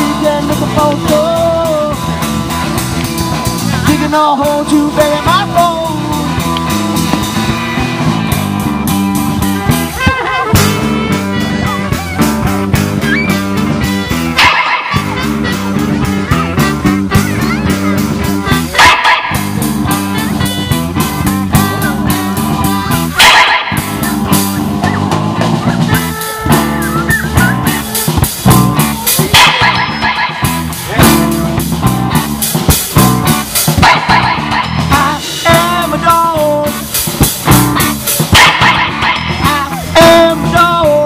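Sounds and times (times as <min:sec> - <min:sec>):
live band with electric guitar: 0:00.0 - 0:41.0
dog-like bark: 0:14.4 - 0:15.2, 0:18.7 - 0:19.6, 0:23.1 - 0:25.0, 0:29.1 - 0:30.6, 0:33.8 - 0:34.8, 0:38.3 - 0:39.4.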